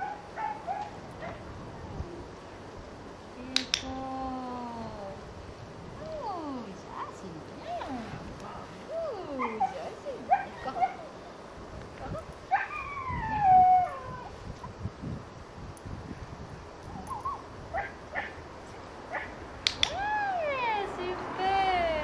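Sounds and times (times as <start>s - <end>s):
young dog whining and yipping: 12.5s - 14.4s, 16.9s - 18.3s.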